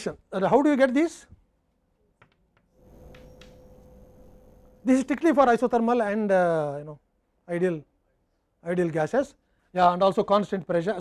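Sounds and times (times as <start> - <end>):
steady hum: 2.8 - 6.7.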